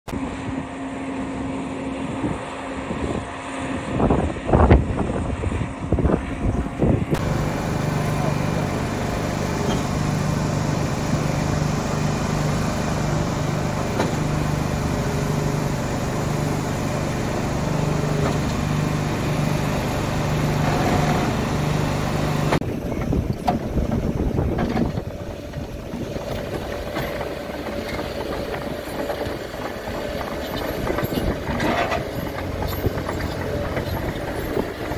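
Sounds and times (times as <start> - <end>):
bulldozer and excavator moving earth: 0.1 - 34.9
concrete pump pulsing hum: 0.1 - 34.9
rock crusher running: 7.2 - 34.9.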